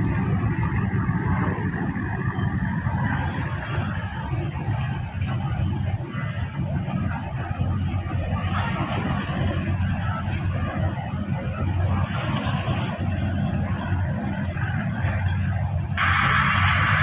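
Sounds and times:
boat engine rumble: 0.0s - 17.0s
wind and water noise: 0.0s - 17.0s
loud hiss: 16.0s - 17.0s.

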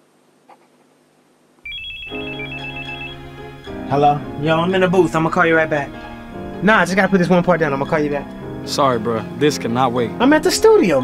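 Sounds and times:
phone ringtone melody: 1.7s - 3.9s.

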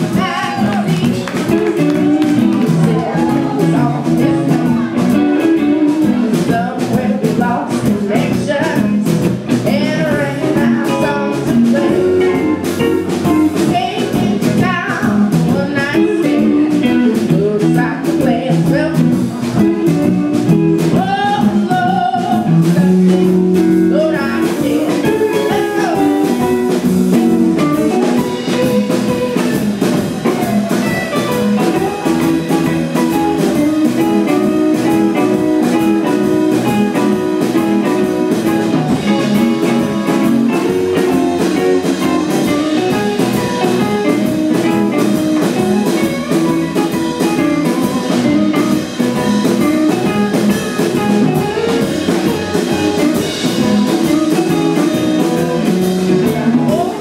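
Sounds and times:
woman singing: 0.0s - 12.6s, 13.3s - 20.1s, 20.8s - 26.6s, 51.3s - 57.0s
electric guitar solo: 0.0s - 57.0s
live blues band playing: 0.0s - 57.0s.

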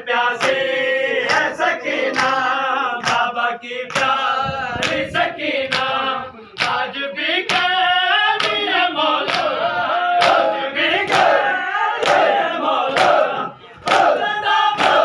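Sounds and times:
men chanting in unison: 0.0s - 15.0s
hand slapping chest: 6.6s - 6.8s, 14.8s - 15.0s.

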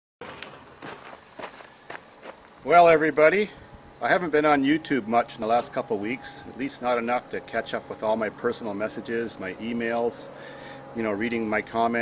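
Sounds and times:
footsteps: 0.2s - 2.6s
faint outdoor background noise: 0.2s - 12.0s.

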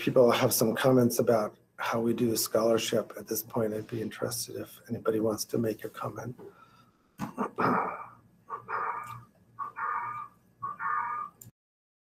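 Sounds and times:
pet animal calling: 8.5s - 11.5s.

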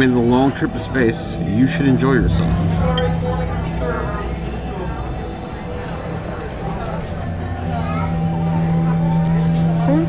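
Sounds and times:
indistinct chatter of diners: 0.0s - 10.0s
steady low hum: 0.0s - 10.0s.

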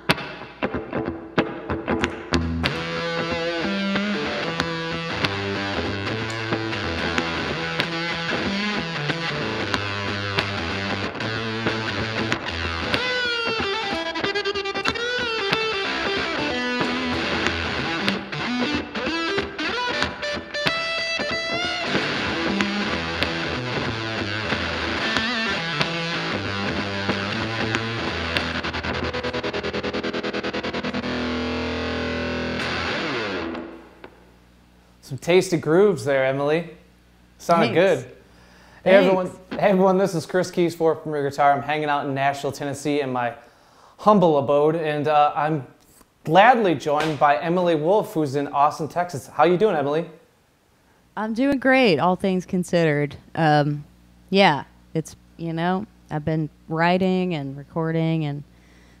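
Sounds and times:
distorted electric guitar riffing: 0.0s - 34.4s.

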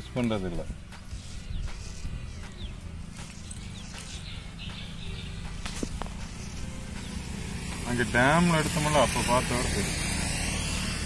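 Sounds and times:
razor scraping hair off scalp: 0.9s - 2.6s, 7.1s - 11.0s.

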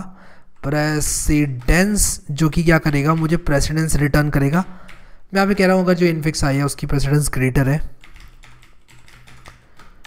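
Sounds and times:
computer keyboard typing: 0.5s - 5.8s, 7.9s - 10.0s.

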